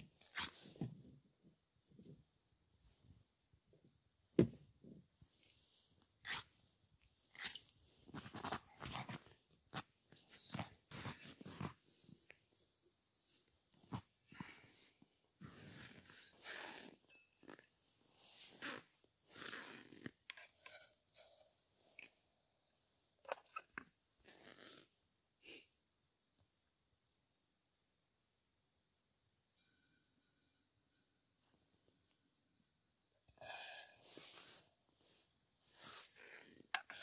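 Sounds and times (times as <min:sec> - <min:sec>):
snow scooped into metal pot: 0:33.3 - 0:37.0.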